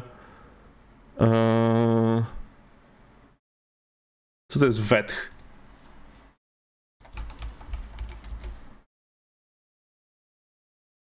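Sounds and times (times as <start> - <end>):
computer keyboard typing: 7.0 - 8.6.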